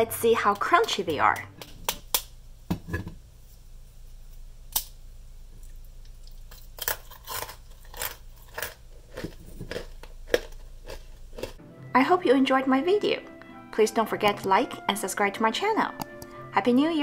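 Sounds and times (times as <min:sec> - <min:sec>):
fried dough crunching: 0:05.8 - 0:11.6.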